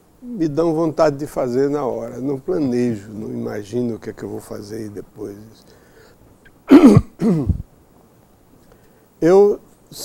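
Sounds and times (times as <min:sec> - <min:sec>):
man clearing his throat: 0:06.7 - 0:07.7.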